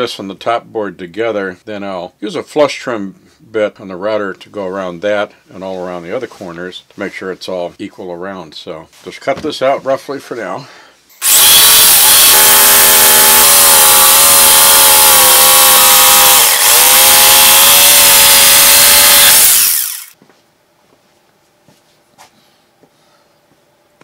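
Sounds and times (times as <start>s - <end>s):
jigsaw cutting plywood: 11.2s - 20.2s.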